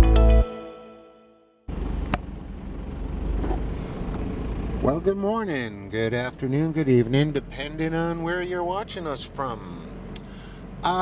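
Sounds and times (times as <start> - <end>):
vehicle engine and road noise: 1.7 - 11.0.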